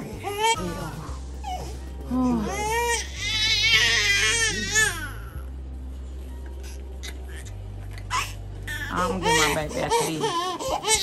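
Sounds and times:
baby crying: 2.4s - 5.4s, 7.0s - 11.0s.

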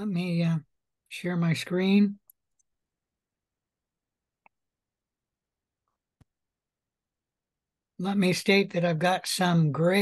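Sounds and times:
person speaking: 0.0s - 2.8s, 8.0s - 10.0s.

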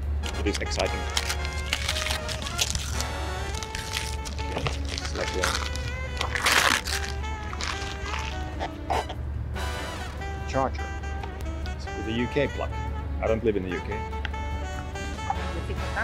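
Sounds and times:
background music with low beat: 0.0s - 16.0s
paper rustling: 0.2s - 8.4s.

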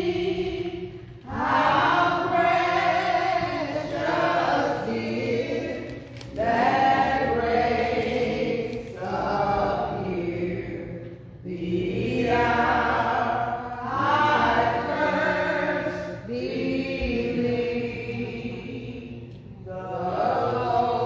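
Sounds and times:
women singing a hymn: 0.0s - 21.0s.

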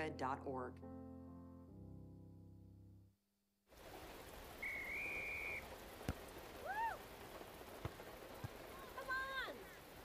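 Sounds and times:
steady rain: 3.7s - 10.0s
referee's whistle: 4.6s - 5.6s.

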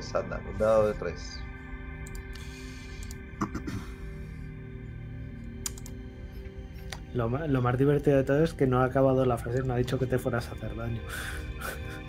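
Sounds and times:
sustained tone background music: 0.0s - 12.0s
sharp clicks: 2.0s - 3.3s, 5.5s - 6.0s.

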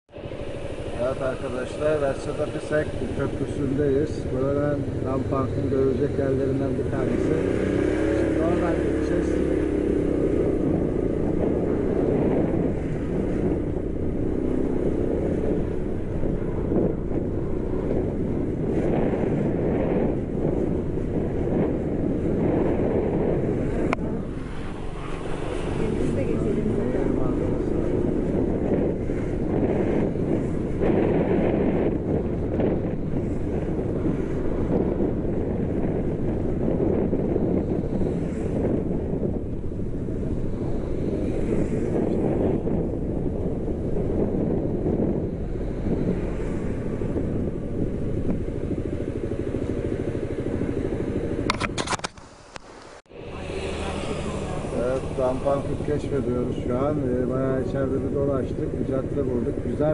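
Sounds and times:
road noise: 0.0s - 59.9s
wind rushing over microphone: 0.1s - 59.9s
motorbike engine: 0.2s - 59.9s.

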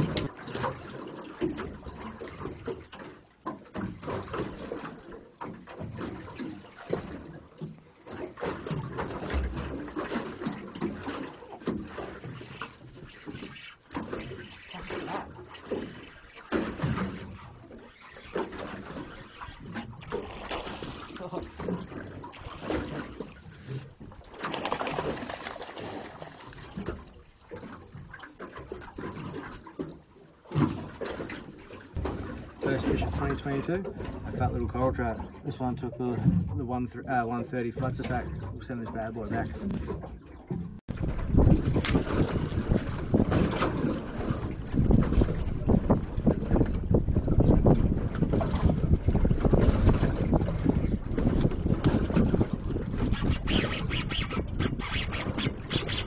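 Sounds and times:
water splashing against boat hull: 0.0s - 56.0s.

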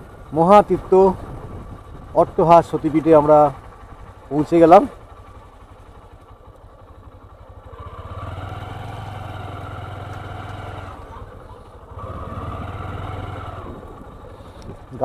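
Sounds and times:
motorcycle engine revving: 0.0s - 15.0s.

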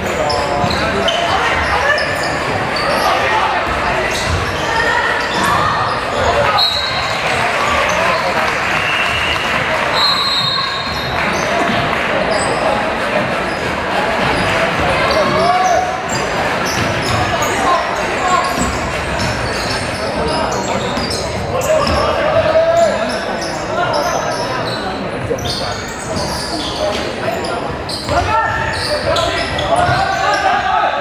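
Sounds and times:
sneaker squeaks: 0.0s - 12.8s, 13.4s - 30.7s
crowd chatter echoing: 0.0s - 31.0s.

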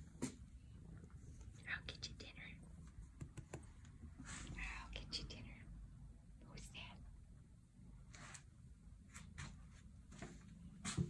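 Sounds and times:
person whispering: 1.6s - 2.7s, 4.4s - 5.7s, 6.4s - 7.1s.

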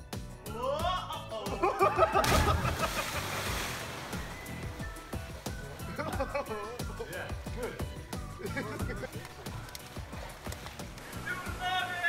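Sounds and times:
background music: 0.0s - 12.0s
splash into water: 2.2s - 5.5s.

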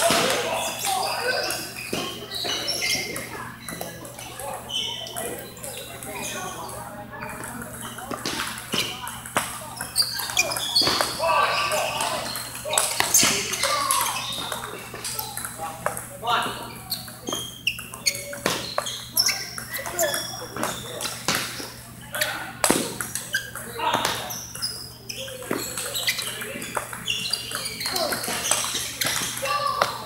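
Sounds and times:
voices chattering: 0.0s - 30.0s
table tennis balls clicking: 11.7s - 16.1s, 24.5s - 30.0s.

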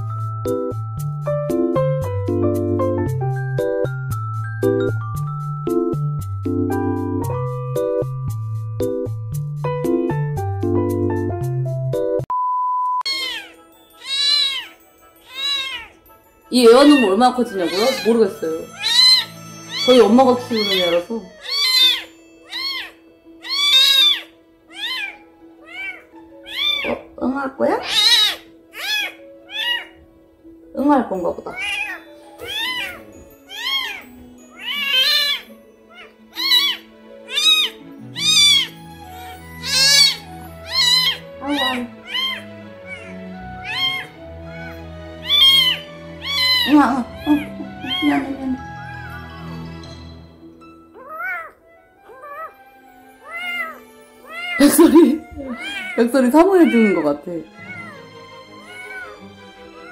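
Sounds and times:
soft background music: 0.0s - 12.3s, 13.0s - 59.9s
kitten mewing: 13.1s - 16.0s, 17.7s - 27.2s, 27.8s - 30.0s, 31.5s - 49.2s, 51.0s - 59.2s.

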